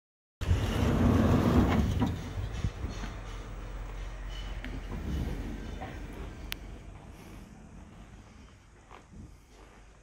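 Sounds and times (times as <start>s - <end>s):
low rumbling noise: 0.4s - 10.0s.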